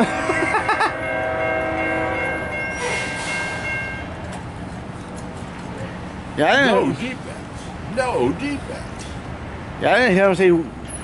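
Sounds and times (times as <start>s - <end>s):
multi-note horn chord: 0.0s - 2.8s.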